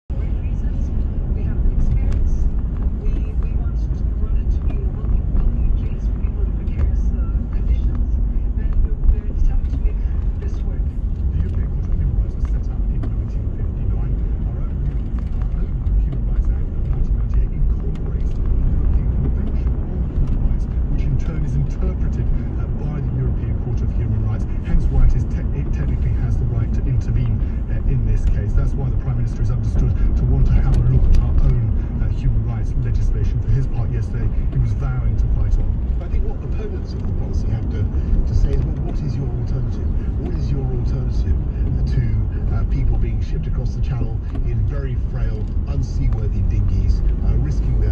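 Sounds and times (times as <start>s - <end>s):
car engine and tyres rumbling: 0.0s - 47.9s.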